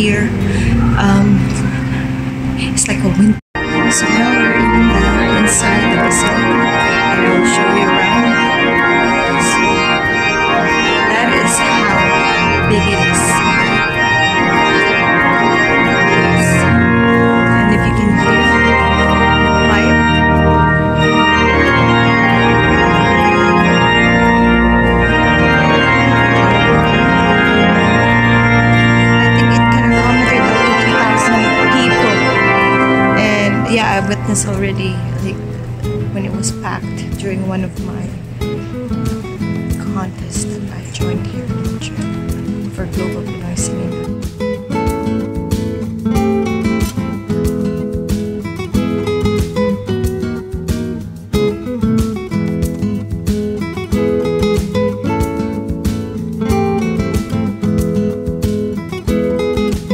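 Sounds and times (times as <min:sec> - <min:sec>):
church pipe organ chords: 0:00.0 - 0:38.4.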